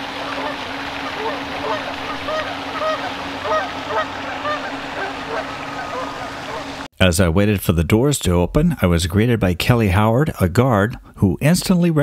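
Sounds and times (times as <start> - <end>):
geese honking: 0.0 - 6.9
pond fountain splashing: 0.0 - 6.9
low steady hum: 0.0 - 11.6.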